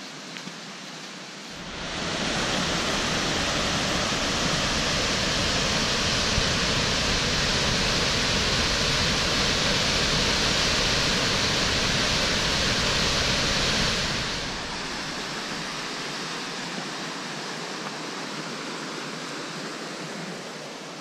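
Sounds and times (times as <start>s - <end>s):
waterfall rushing: 1.5s - 17.3s.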